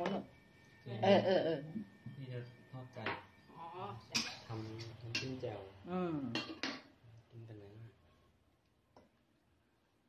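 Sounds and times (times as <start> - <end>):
woman talking: 1.0 - 1.8, 5.9 - 6.4
utensil clinking on metal bowl: 4.0 - 5.4.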